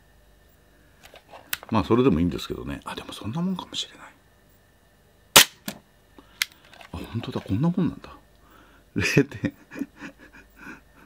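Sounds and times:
airsoft pistol shot crack: 5.4s - 5.8s.

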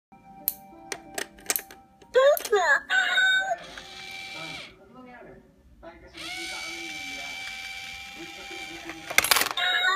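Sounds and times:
small motor whirring: 3.6s - 4.7s, 6.2s - 9.2s.

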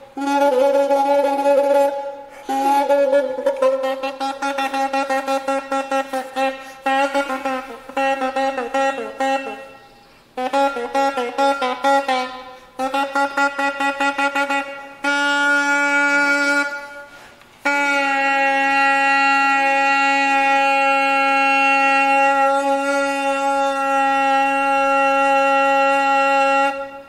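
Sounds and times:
bassoon playing: 0.0s - 27.0s.

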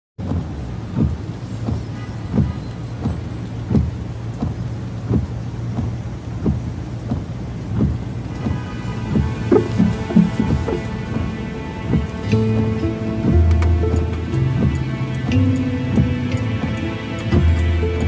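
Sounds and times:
car engine and road hum: 0.2s - 18.0s
rain: 0.2s - 18.0s
windshield wipers thudding: 0.2s - 18.0s
music with held tones: 8.4s - 18.0s.

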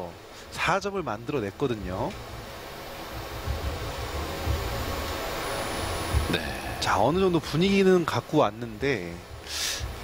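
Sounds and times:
hall background hiss: 0.0s - 10.0s
low rumble: 2.2s - 6.8s.

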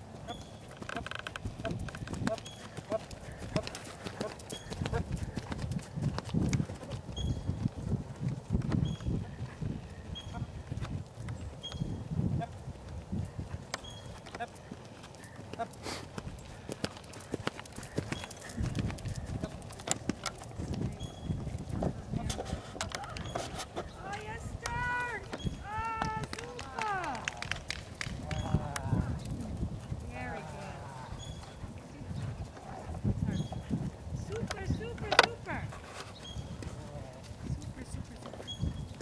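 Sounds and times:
horse hoofbeats on sand: 0.0s - 11.1s, 12.5s - 22.5s.

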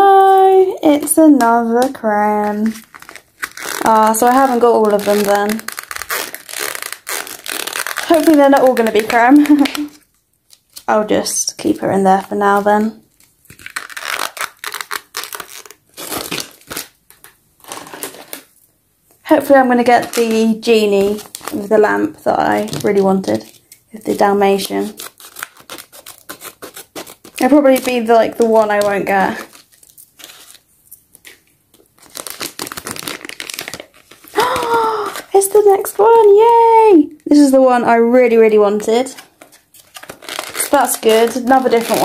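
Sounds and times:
plastic packaging crinkling: 0.0s - 37.4s, 38.2s - 42.0s
person saying ooh: 34.4s - 35.3s.

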